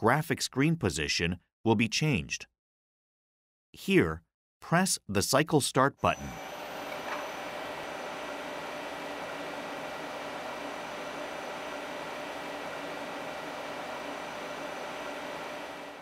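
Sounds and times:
machine fans and hydraulics humming: 6.2s - 16.0s.

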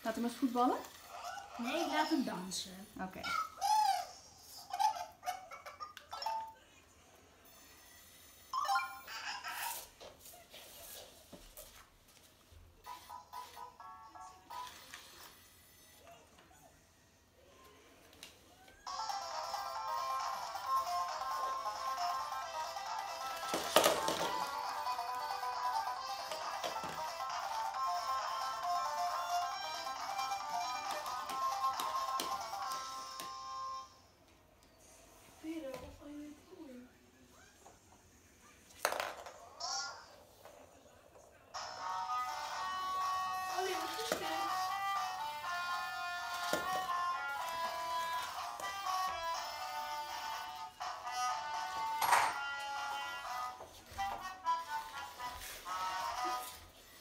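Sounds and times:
electronic dance tune from toy speaker: 18.9s - 23.5s, 41.6s - 53.6s.

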